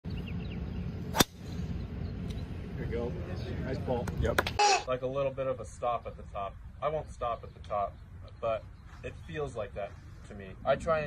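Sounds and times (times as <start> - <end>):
low outdoor background: 0.0 - 11.0
golf club striking ball: 1.1 - 1.6.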